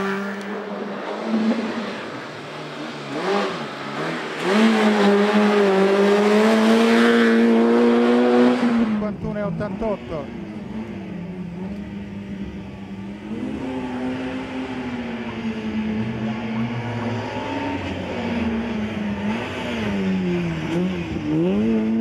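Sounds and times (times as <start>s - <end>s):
race car engine revving: 0.0s - 22.0s.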